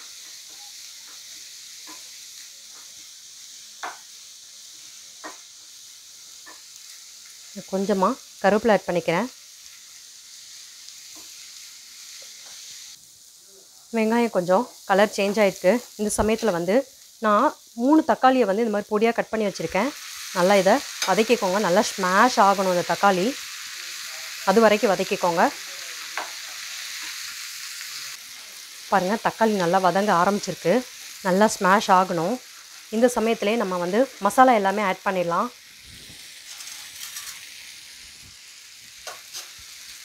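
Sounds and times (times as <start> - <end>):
vegetables sizzling in a hot pan: 0.0 - 40.0.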